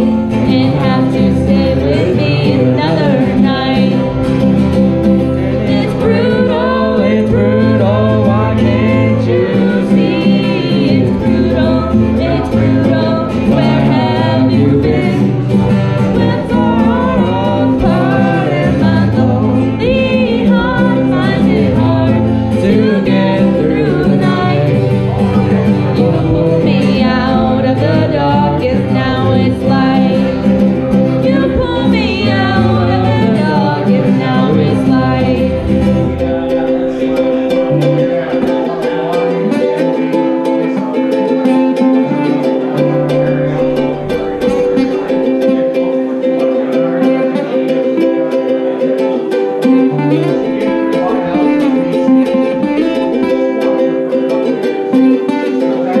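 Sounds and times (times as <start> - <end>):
acoustic guitar: 0.0 - 56.0
person singing: 0.0 - 56.0
strummed ukulele: 0.0 - 56.0.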